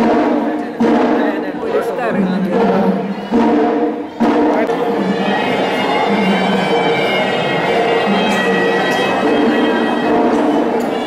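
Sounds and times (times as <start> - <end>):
reedy wind instrument music: 0.0 - 11.0
voices: 0.0 - 11.0.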